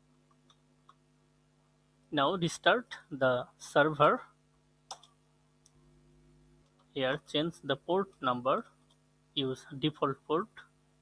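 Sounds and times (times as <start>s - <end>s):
quiet steady hum: 0.0s - 11.0s.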